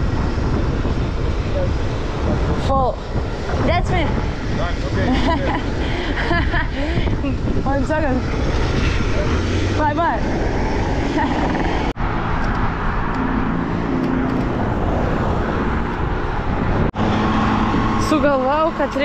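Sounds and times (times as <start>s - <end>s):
car traffic: 0.0s - 19.0s
engine hum of motor traffic: 0.0s - 19.0s
wind buffeting microphone: 0.0s - 19.0s.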